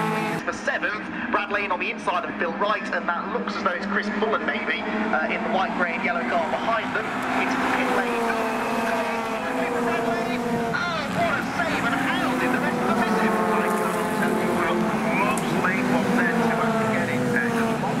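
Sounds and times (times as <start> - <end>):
racing car engines: 0.0 - 18.0
indistinct voices: 2.0 - 18.0.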